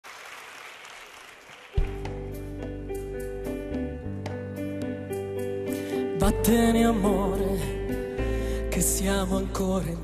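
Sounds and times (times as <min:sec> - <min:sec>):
audience applause: 0:00.0 - 0:02.1.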